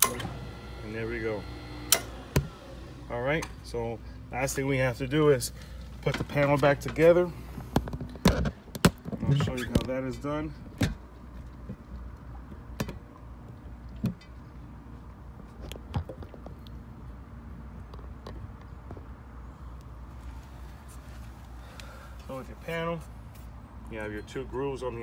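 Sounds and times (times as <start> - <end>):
steady low hum: 0.0 - 8.8.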